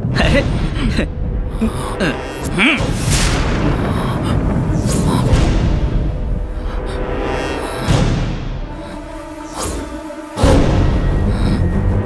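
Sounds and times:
person gasping: 0.2 - 3.0, 3.6 - 5.7, 6.5 - 10.0.

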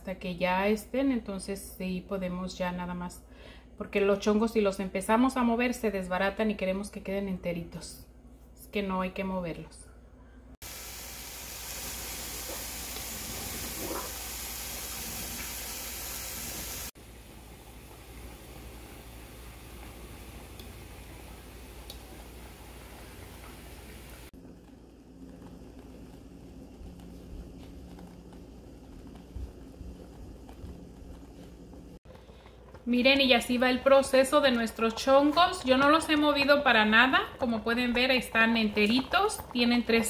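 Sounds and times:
milk simmering and bubbling: 10.6 - 40.0.

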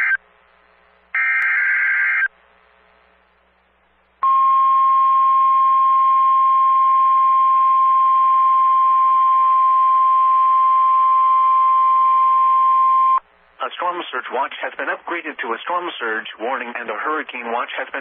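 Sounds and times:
faint radio hiss: 0.0 - 18.0
person reading a warning: 13.6 - 18.0.

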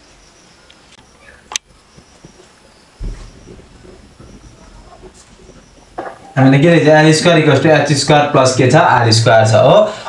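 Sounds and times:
rustling: 0.0 - 7.7
faint irregular knocks: 1.6 - 6.5
dull heavy low thump: 3.0 - 7.1.

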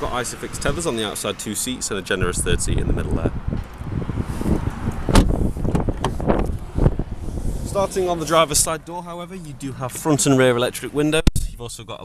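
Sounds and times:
wind buffeting microphone: 2.1 - 8.7.

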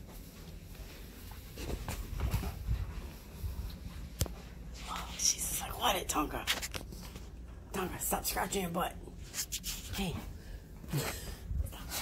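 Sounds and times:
rustling on leather couch: 0.0 - 5.1.

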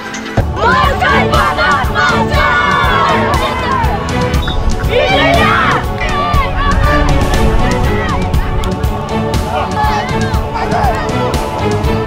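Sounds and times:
children shouting a team cheer: 0.6 - 4.1, 4.8 - 8.6, 9.4 - 11.2.

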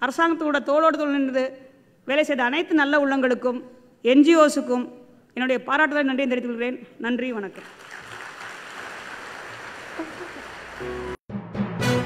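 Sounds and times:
audience applauding: 7.6 - 11.2.

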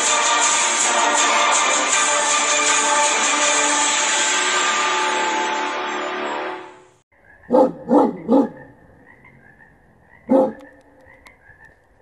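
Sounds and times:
music: 0.0 - 7.0
dog barks: 7.4 - 8.8, 10.2 - 10.8.

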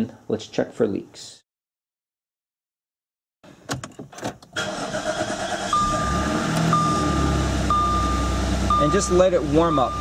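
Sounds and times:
car engine starting and idling: 4.5 - 10.0
dashboard warning chime: 5.7 - 10.0.

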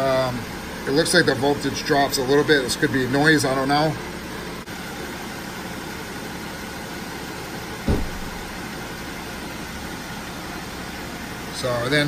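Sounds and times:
diesel engine idling: 0.0 - 12.0
short low thump: 7.9 - 8.6.

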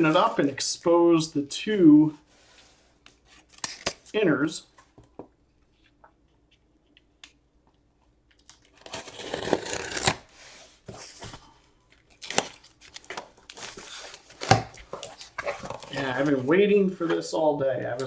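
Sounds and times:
cardboard tearing: 8.7 - 10.3.

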